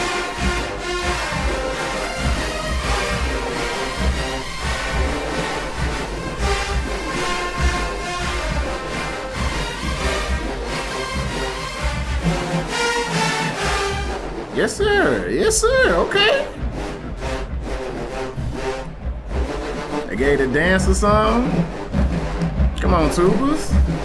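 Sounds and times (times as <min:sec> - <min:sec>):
marching band playing: 0:00.0 - 0:24.0.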